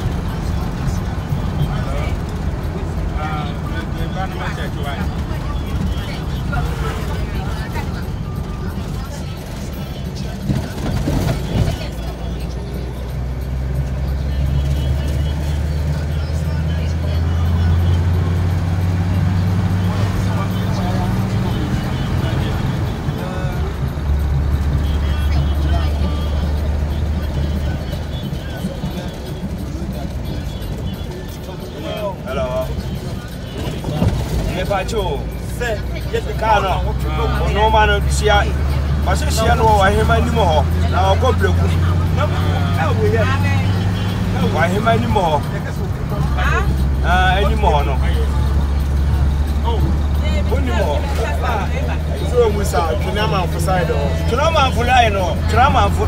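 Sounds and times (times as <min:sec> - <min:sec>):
car engine and road noise: 0:00.0 - 0:56.0
voices: 0:00.0 - 0:56.0
music: 0:04.5 - 0:44.3, 0:45.2 - 0:56.0.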